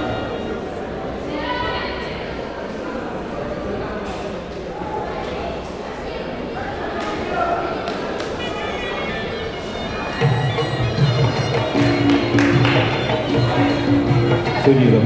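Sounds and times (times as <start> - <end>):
voices murmuring in a hall: 0.0 - 15.0
drum beat: 10.2 - 14.6.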